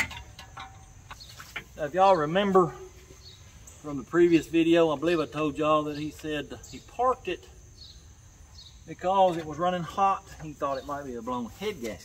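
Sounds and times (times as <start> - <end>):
metal tool clack: 0.0 - 1.8
insect drone: 0.0 - 11.8.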